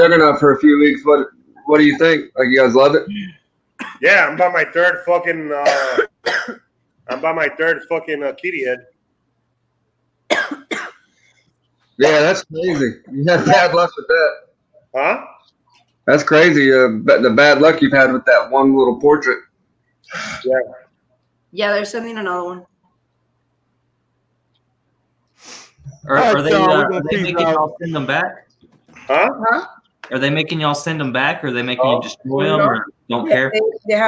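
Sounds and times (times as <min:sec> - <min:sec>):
man speaking: 0:00.0 - 0:03.1, 0:04.0 - 0:06.1, 0:07.1 - 0:08.9, 0:12.0 - 0:14.4, 0:16.1 - 0:19.4, 0:20.1 - 0:20.8, 0:25.9 - 0:29.4, 0:30.1 - 0:33.8
faint hum: 0:00.0 - 0:34.0
person coughing: 0:03.1 - 0:04.1, 0:05.6 - 0:07.4, 0:10.3 - 0:11.0.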